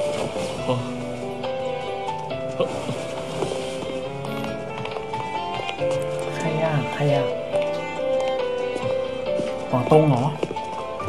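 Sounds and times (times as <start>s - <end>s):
background music: 0.0s - 11.0s
footsteps clicking on hard walkway: 0.0s - 11.0s.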